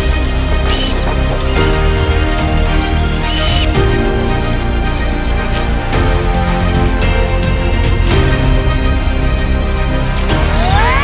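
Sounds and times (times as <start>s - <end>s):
background music sustained notes: 0.0s - 11.0s.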